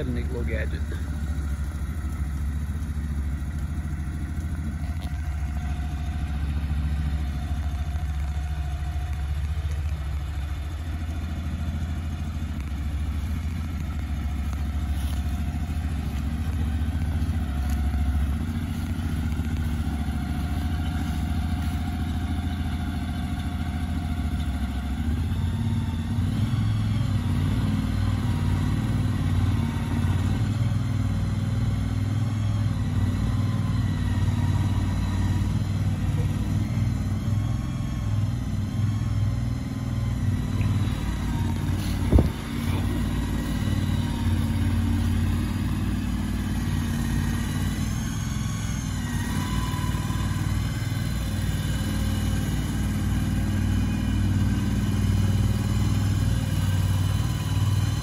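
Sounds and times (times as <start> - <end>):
engine humming steadily: 0.0 - 58.0.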